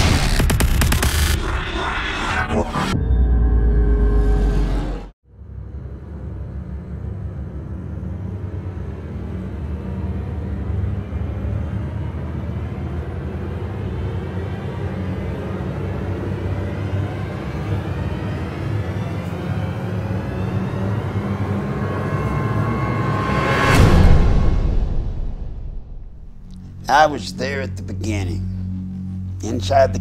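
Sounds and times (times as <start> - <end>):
ominous suspense riser drone: 0.0 - 30.0.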